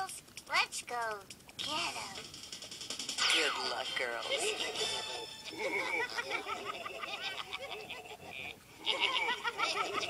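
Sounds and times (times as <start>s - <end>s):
cartoon characters laughing: 3.3s - 10.0s.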